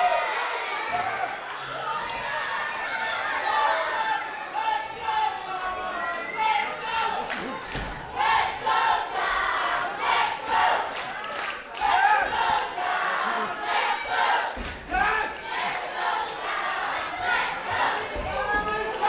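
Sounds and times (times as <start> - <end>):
crowd shouting in chant-like bursts: 0.0 - 19.0.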